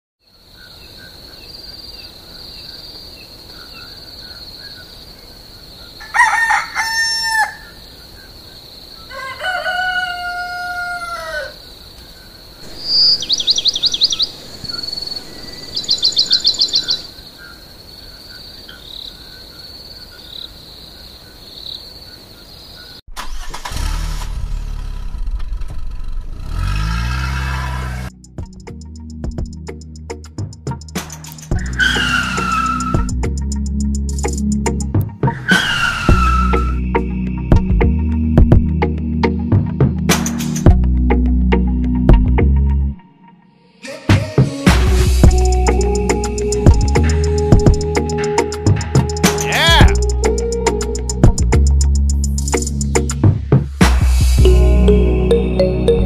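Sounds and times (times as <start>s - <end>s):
trilling bird calls: 0.5s - 23.0s, 31.4s - 33.2s, 35.3s - 37.2s
rooster crowing: 6.0s - 7.8s, 9.1s - 11.6s
faint bird chirps: 12.2s - 23.0s
steady high-pitched tone: 54.4s - 56.0s.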